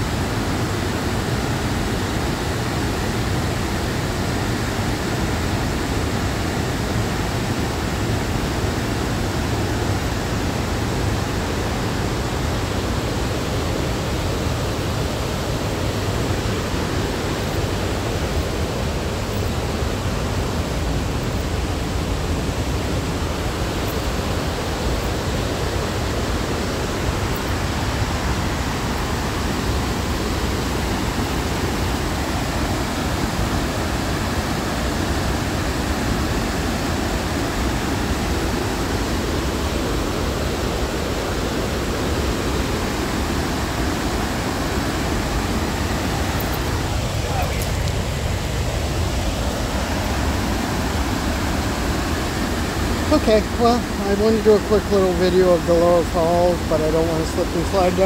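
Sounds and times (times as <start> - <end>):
waterfall and rapids rushing: 0.0 - 58.0.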